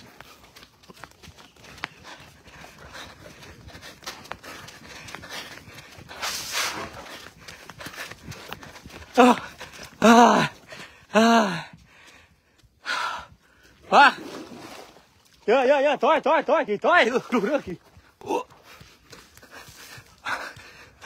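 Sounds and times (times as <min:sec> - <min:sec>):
footsteps on concrete: 0:00.0 - 0:13.8, 0:17.1 - 0:21.0.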